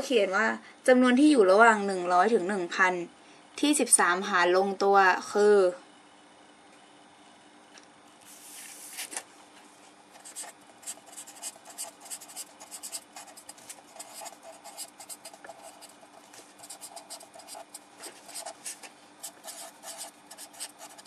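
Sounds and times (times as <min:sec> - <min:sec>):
marker scratching on paper: 0:10.2 - 0:16.0, 0:16.6 - 0:21.0.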